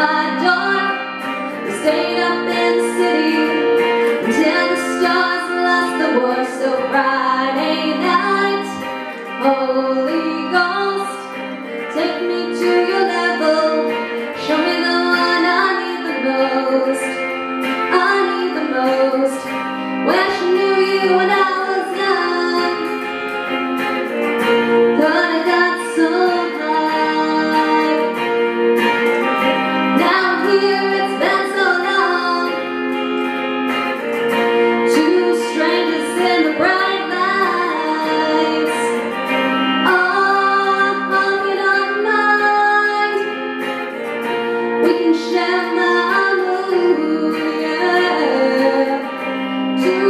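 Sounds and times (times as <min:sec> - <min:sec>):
amplified electric guitar: 0:00.0 - 0:50.0
woman singing pop-rock song: 0:00.0 - 0:50.0.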